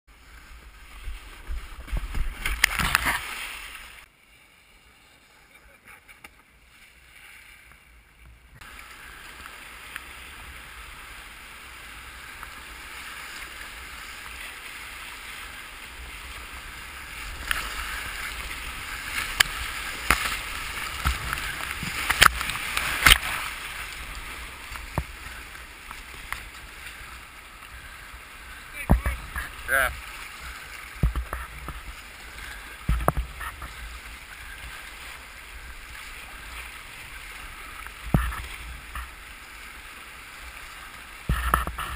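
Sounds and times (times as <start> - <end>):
paddle splashes: 0.1 - 7.9, 8.6 - 41.9
water splashing: 0.1 - 41.9
kayak scraping off a muddy bank: 0.2 - 4.1, 8.6 - 39.9
rapids rushing: 8.6 - 41.9.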